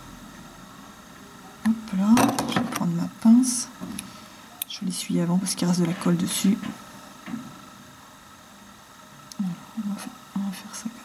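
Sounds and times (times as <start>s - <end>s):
woman speaking: 1.6s - 3.8s, 4.6s - 6.8s, 9.4s - 11.0s.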